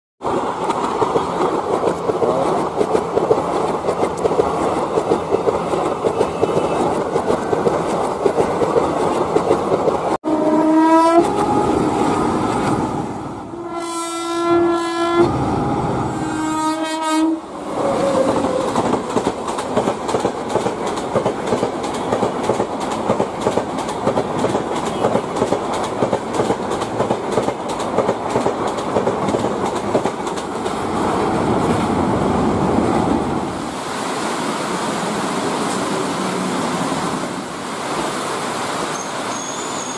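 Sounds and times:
train wheels rumbling on track: 0:00.2 - 0:14.2, 0:15.0 - 0:33.8
train horn blasts: 0:10.2 - 0:11.7, 0:13.5 - 0:17.5.

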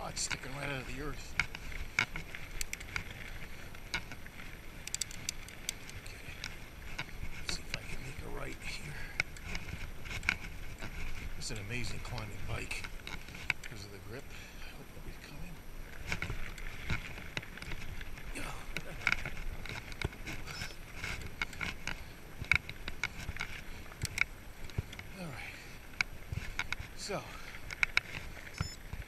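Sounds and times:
sharp clicks and knocks: 0:04.8 - 0:07.8
bike tyres rumbling on dirt: 0:06.2 - 0:14.5
rider breathing hard: 0:14.3 - 0:14.8.

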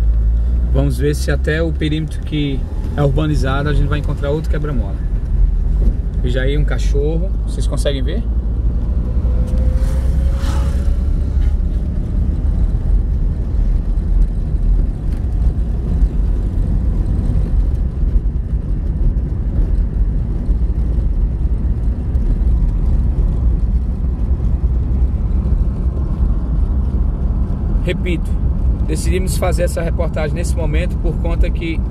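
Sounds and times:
car engine and tyre noise: 0:00.0 - 0:31.9.

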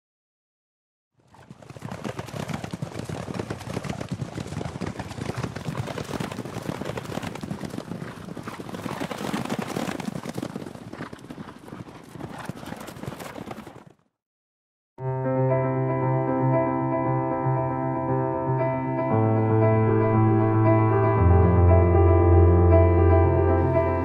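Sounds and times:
horses galloping on dirt: 0:01.2 - 0:14.1.

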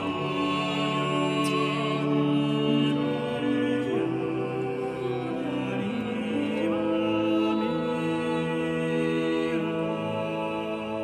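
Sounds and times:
vocal ensemble singing polyphony: 0:00.0 - 0:11.0.

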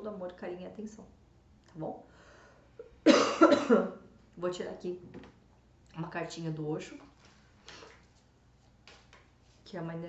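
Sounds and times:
woman coughing: 0:02.9 - 0:04.0.

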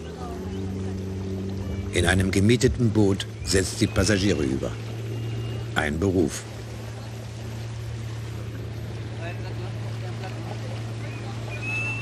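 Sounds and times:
small boat motor humming: 0:00.0 - 0:12.0.

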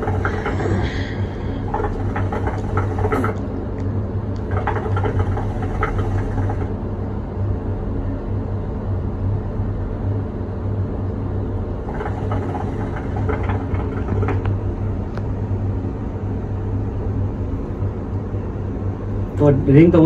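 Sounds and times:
hookah water gurgling: 0:00.0 - 0:03.5, 0:04.4 - 0:06.8, 0:11.8 - 0:15.1
low mechanical hum: 0:00.0 - 0:20.0.

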